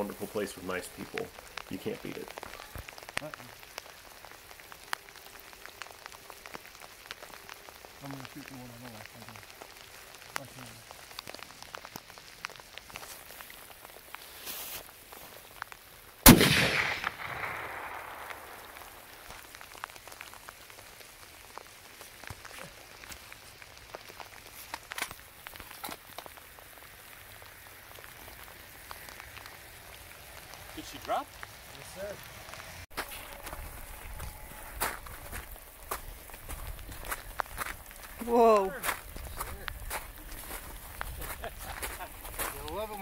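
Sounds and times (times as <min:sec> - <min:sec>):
rifle shot: 0:16.2 - 0:18.6.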